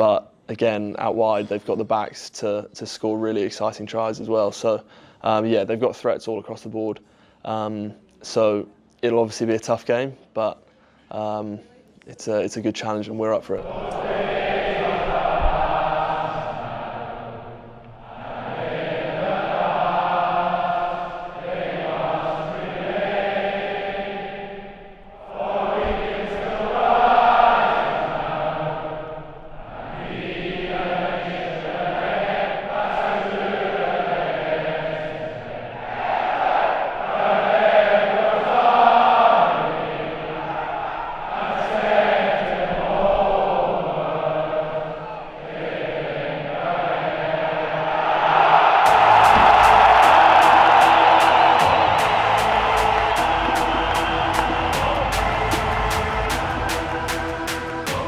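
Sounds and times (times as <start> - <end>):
group singing slow chant: 13.6 - 58.0
electronic music with fast beat: 48.9 - 58.0.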